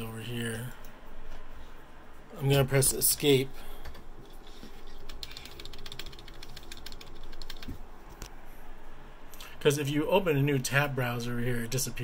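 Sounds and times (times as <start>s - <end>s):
keyboard keys clicking: 5.0s - 7.8s.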